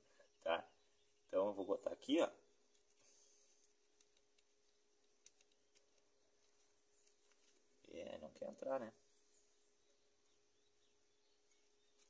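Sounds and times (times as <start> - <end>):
tiny clicks: 3.6 - 6.0.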